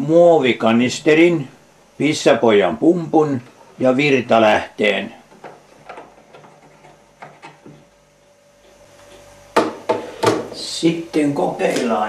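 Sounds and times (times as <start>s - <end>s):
faint steady hum: 0.0s - 12.0s
power cable clicks and taps: 5.3s - 7.8s.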